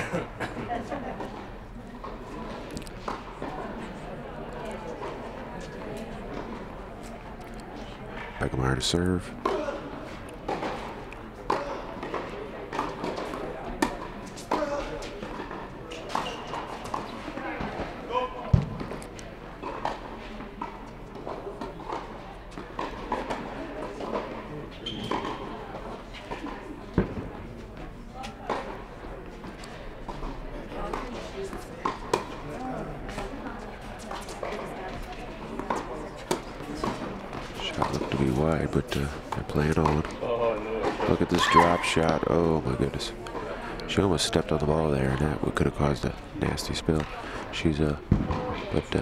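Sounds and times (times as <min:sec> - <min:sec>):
background voices talking: 0:00.0 - 0:49.0
tennis balls struck and bouncing: 0:10.5 - 0:17.1, 0:25.0 - 0:25.5, 0:35.0 - 0:38.2.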